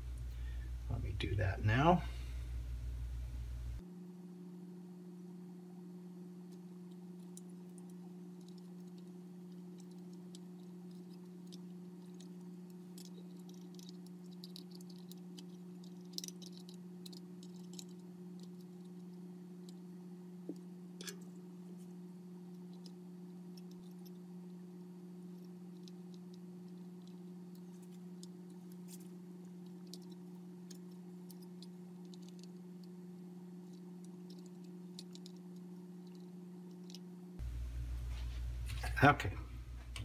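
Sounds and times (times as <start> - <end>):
steady low hum: 0.0 - 40.0
small clicks of handling wire: 6.5 - 24.6, 25.3 - 33.0, 33.6 - 37.1.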